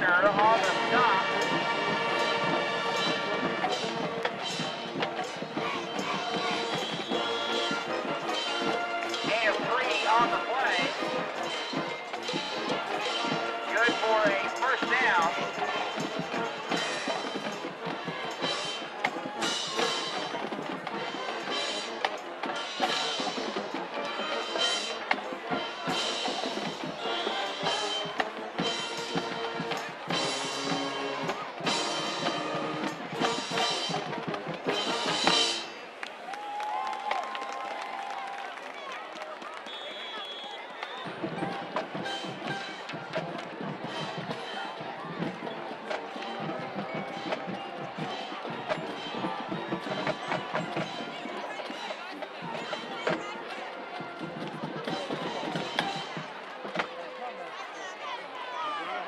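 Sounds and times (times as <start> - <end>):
marching band playing: 0.0 - 37.3, 40.8 - 56.8
crowd murmuring and calling out: 0.0 - 59.0.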